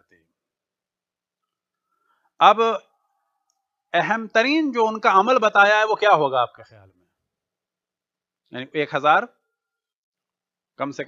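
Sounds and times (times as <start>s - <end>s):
man speaking: 2.4s - 2.8s, 4.0s - 6.9s.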